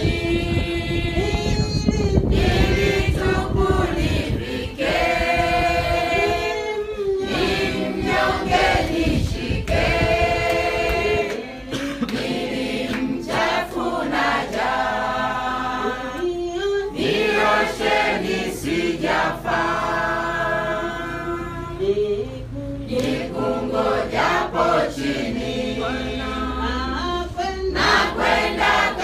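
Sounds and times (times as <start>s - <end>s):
congregation singing: 0.0s - 29.0s.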